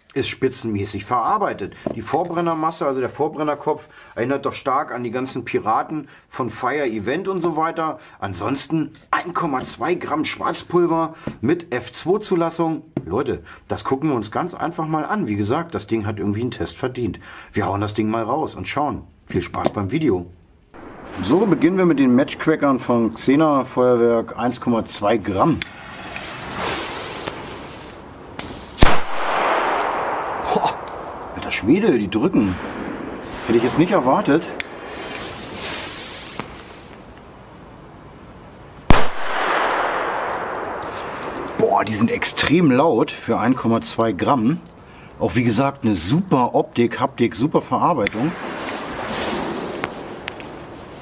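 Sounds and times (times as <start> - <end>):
firecracker bang with echo: 20.8 - 22.9, 28.4 - 36.0, 38.9 - 42.1
firecracker fuse hissing: 25.6 - 29.3, 33.2 - 37.1, 48.2 - 51.0.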